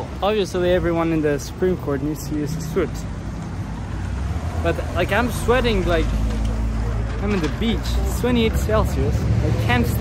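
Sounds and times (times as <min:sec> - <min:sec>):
man talking: 0:00.0 - 0:03.2, 0:04.5 - 0:06.3, 0:07.2 - 0:10.0
city street traffic rumble: 0:00.0 - 0:10.0.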